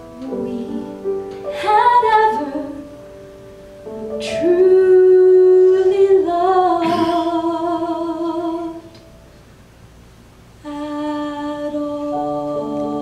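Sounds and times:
woman singing long notes: 0:04.3 - 0:09.0.

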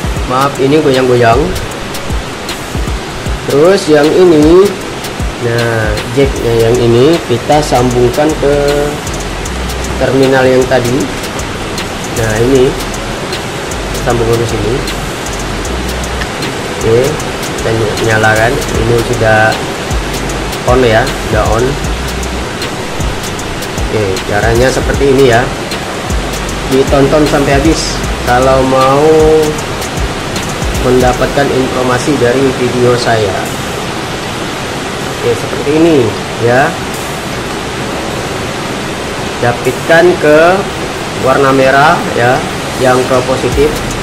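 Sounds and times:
steady rain falling: 0:00.0 - 0:44.0.

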